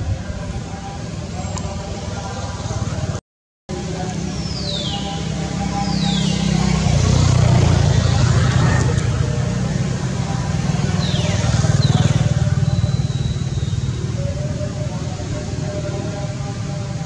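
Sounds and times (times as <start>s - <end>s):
vehicle engine running: 0.5s - 17.0s.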